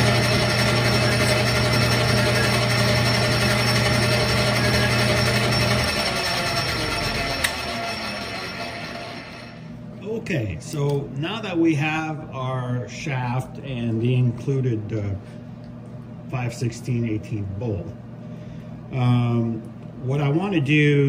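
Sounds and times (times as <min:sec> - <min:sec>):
lathe winding down: 0:00.0 - 0:09.7
lathe motor humming: 0:00.0 - 0:09.8.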